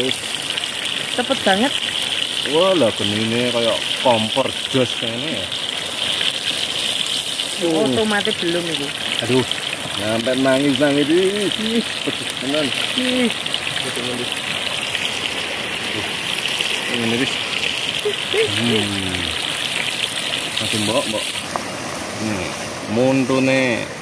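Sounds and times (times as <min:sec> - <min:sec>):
fish sizzling in hot oil: 0:00.0 - 0:24.0.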